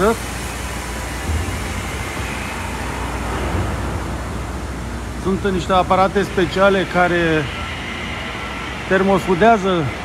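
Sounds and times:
low machinery hum: 0:00.0 - 0:10.0
machinery hiss: 0:00.0 - 0:10.0.

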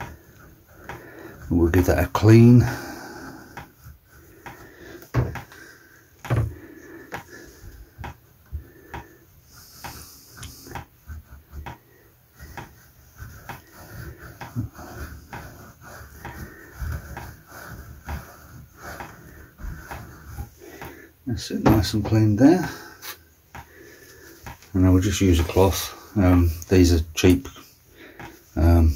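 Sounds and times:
wire wool scrubbing metal: 0:00.0 - 0:06.0, 0:06.6 - 0:28.9.

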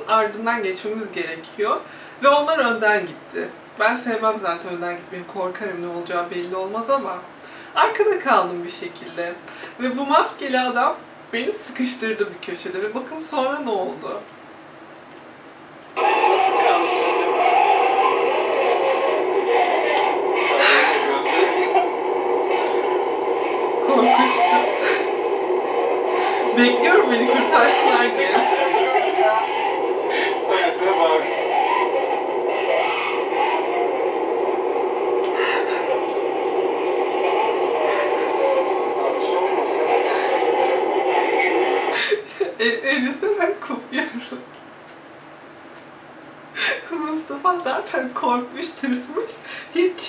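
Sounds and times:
voices: 0:15.8 - 0:44.5.

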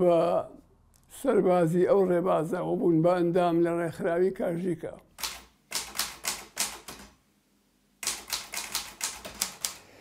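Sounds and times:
typewriter key strikes: 0:05.2 - 0:07.1, 0:08.0 - 0:09.8.

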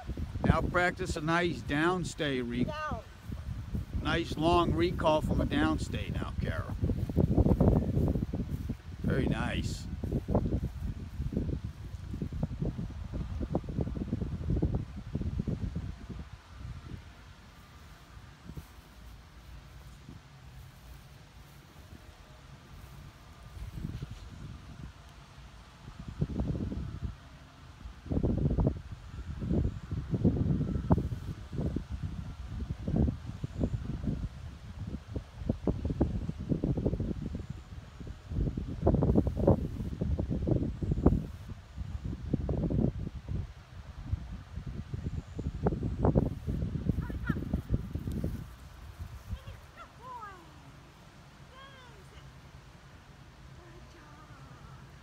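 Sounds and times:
wind buffeting microphone: 0:00.0 - 0:50.5.

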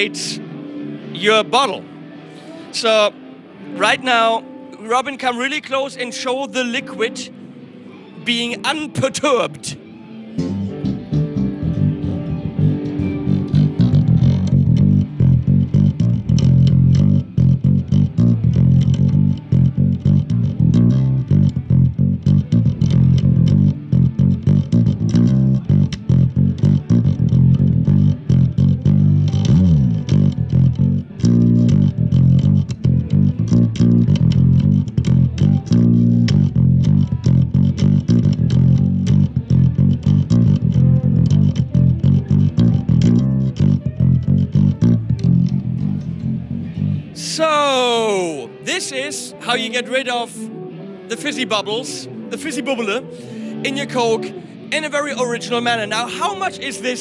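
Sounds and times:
electric bass guitar run: 0:10.4 - 0:47.2.

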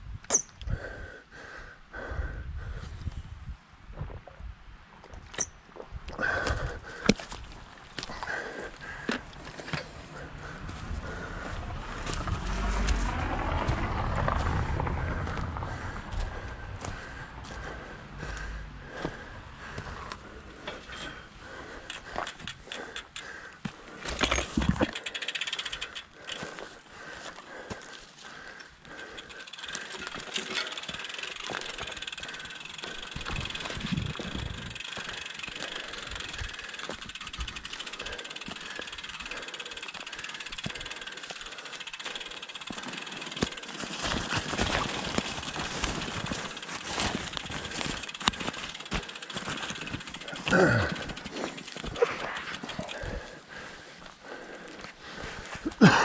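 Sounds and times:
bicycle jolts: 0:06.2 - 0:56.0
bicycle tyres rolling on dirt: 0:06.2 - 0:56.0
bicycle clicks and rattles: 0:06.4 - 0:56.0.

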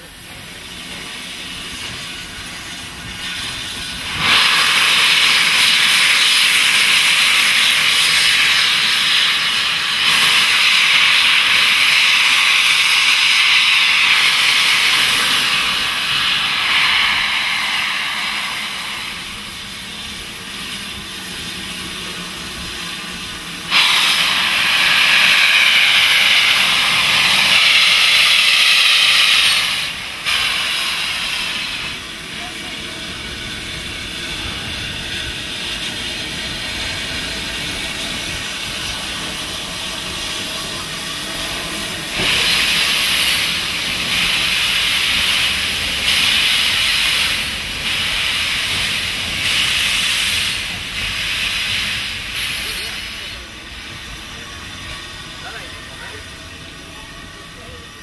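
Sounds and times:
steam hissing loudly: 0:00.0 - 0:58.0.

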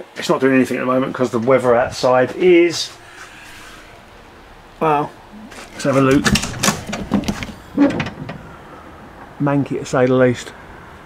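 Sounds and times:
short pitched door sound: 0:05.5 - 0:08.5.

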